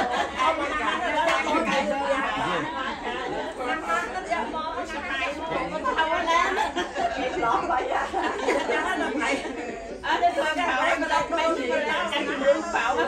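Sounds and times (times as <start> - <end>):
overlapping chatter: 0.0 - 13.0.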